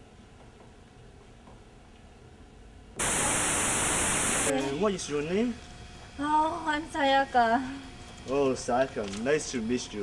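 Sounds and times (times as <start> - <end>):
tv static hiss: 3.0 - 5.2.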